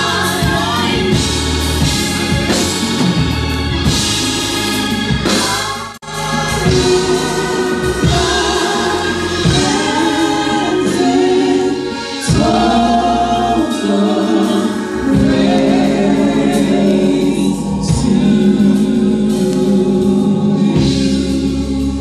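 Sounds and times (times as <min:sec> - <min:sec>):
singers singing a worship song: 0:00.0 - 0:22.0
sustained low chords: 0:06.0 - 0:22.0.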